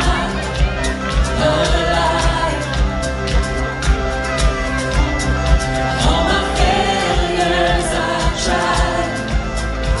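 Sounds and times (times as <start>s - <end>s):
person singing: 0.0s - 3.2s, 5.8s - 10.0s
worship band playing: 0.0s - 10.0s.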